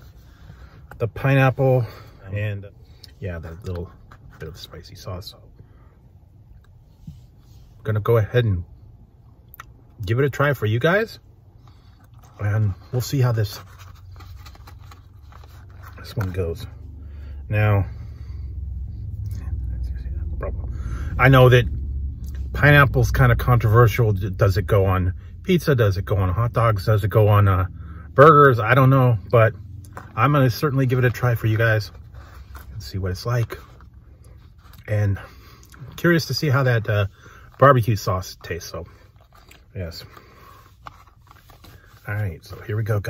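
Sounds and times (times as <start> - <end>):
low hum inside car cabin: 0.0 - 43.0
wrapper rustling: 12.1 - 16.4
man breathing or murmuring: 20.2 - 21.2.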